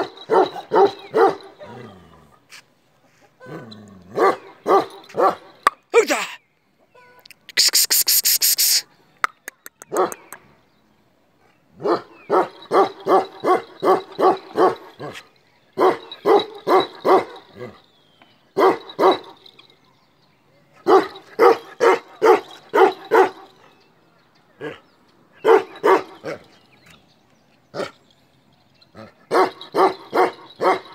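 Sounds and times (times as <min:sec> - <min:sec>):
dog barking: 0:00.0 - 0:01.8, 0:04.2 - 0:05.5, 0:09.8 - 0:10.3, 0:11.8 - 0:15.2, 0:15.8 - 0:17.6, 0:18.6 - 0:19.4, 0:20.8 - 0:23.6, 0:25.4 - 0:26.4, 0:29.3 - 0:30.9.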